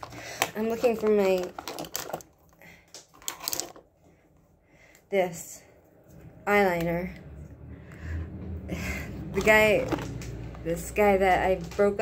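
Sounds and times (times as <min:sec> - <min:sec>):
makeup items clicking and clattering: 0:00.0 - 0:03.9, 0:09.3 - 0:12.0.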